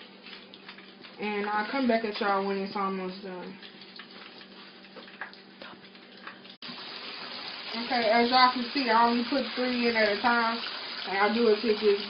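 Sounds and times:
fish frying in oil: 0.0 - 12.0.

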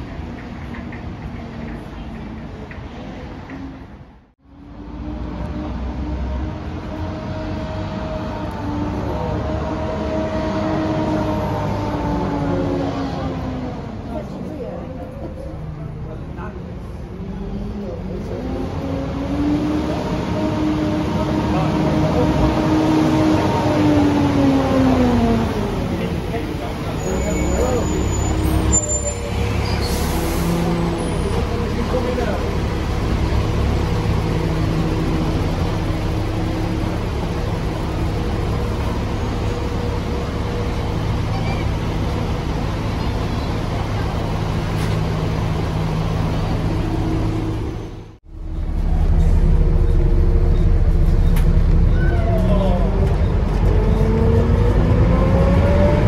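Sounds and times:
bus pulling away: 0.0 - 56.0
bus diesel engine idling: 23.4 - 54.0.

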